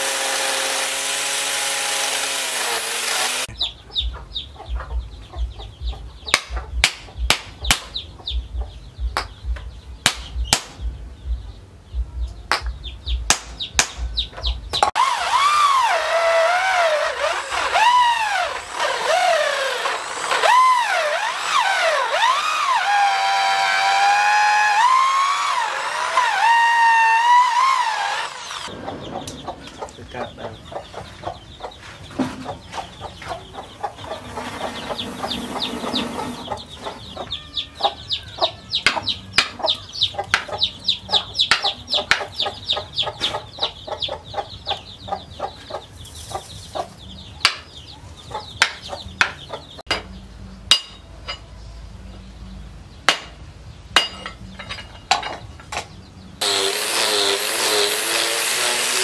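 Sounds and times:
electric drill boring into wood: 0:00.0 - 0:03.5, 0:15.0 - 0:28.7, 0:56.4 - 0:59.0.

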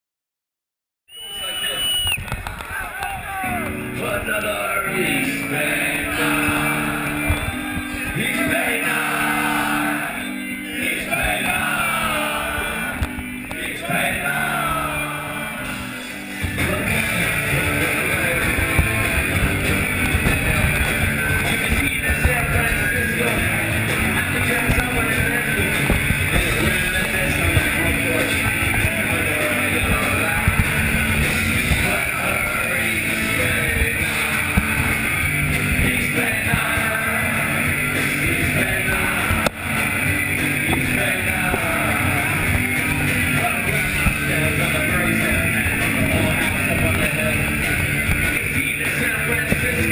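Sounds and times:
distorted electric guitars: 0:01.8 - 0:49.9
bass: 0:03.3 - 0:49.9
punk rock band playing live: 0:03.5 - 0:49.9
drum hits: 0:16.4 - 0:49.9.

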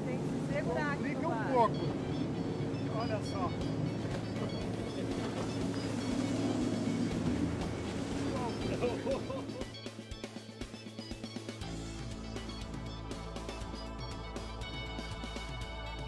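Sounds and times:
choppy water: 0:00.0 - 0:16.0
outboard motor running: 0:00.0 - 0:16.0
background music with steady beat: 0:01.8 - 0:16.0.

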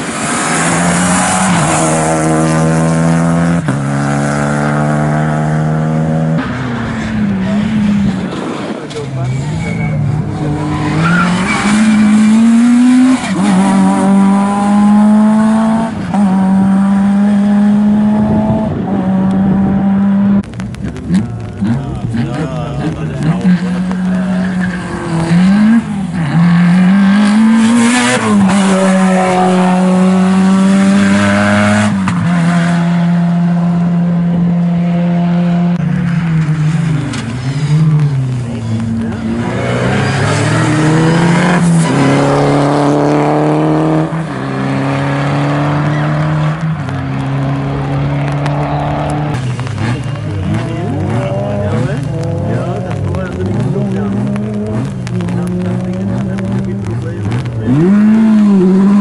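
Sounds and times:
rally car engine accelerating: 0:00.0 - 0:59.0.

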